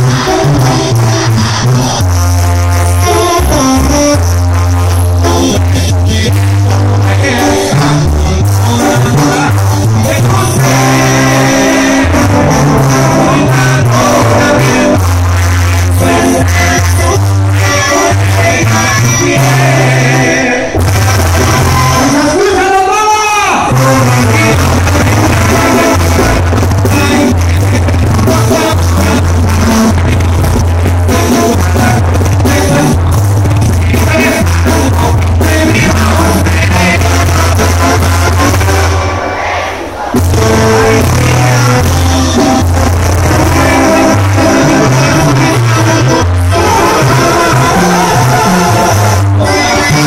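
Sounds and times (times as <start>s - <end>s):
tuba bass line: 0.0s - 22.7s, 23.6s - 39.4s, 40.0s - 50.0s
live brass band music: 0.0s - 50.0s.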